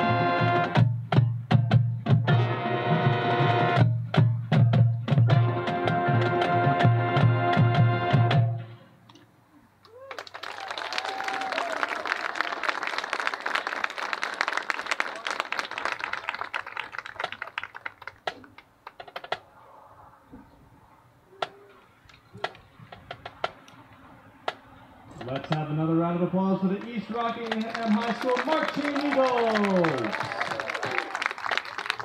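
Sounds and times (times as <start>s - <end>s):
marching band chord: 0.0s - 1.3s, 2.1s - 4.2s, 5.2s - 8.7s
audience applauding: 9.9s - 19.0s, 26.7s - 32.0s.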